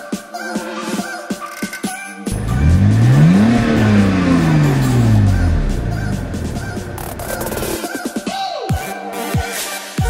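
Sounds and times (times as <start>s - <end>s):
car engine revving then idling: 2.3s - 7.8s.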